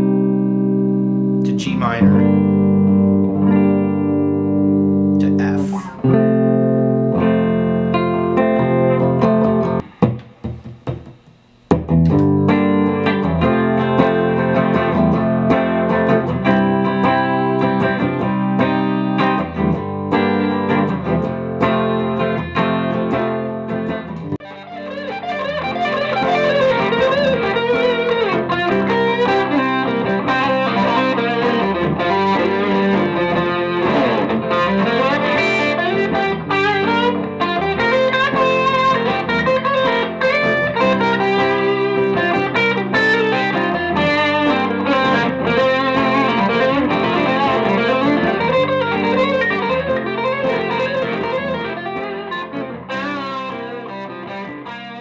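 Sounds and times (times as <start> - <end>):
electric guitar through an amp: 0.0 - 55.0.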